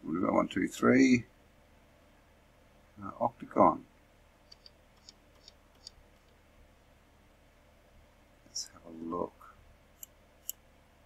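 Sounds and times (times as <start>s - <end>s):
computer mouse clicking: 4.5s - 6.4s.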